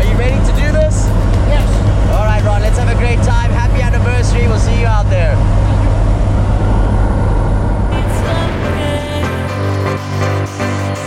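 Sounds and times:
rushing wind: 0.0 - 9.2
airplane engines droning: 0.0 - 10.4.

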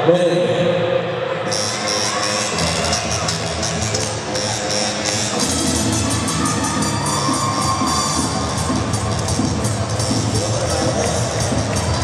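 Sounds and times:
latin dance music over loudspeakers: 0.0 - 12.0
crowd cheering: 4.9 - 12.0.

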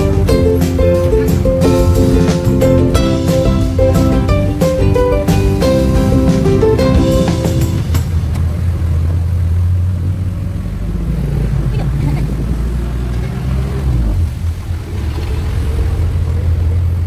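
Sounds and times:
road noise: 0.0 - 17.0
vehicle engine rumble: 0.0 - 17.0.

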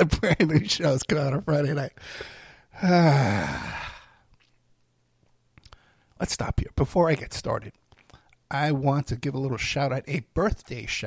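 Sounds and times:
man sighing: 2.0 - 4.3.

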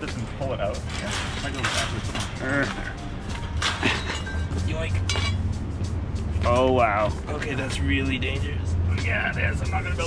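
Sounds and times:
background music: 0.0 - 10.0
metallic clinks and scrapes: 0.6 - 5.6.

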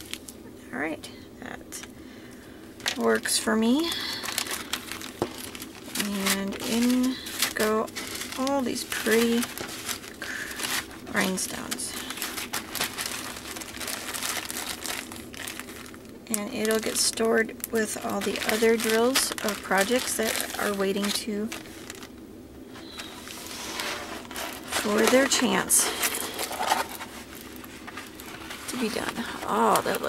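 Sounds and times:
plastic film rustling: 2.8 - 30.0
plastic packets crinkling: 2.8 - 30.0.

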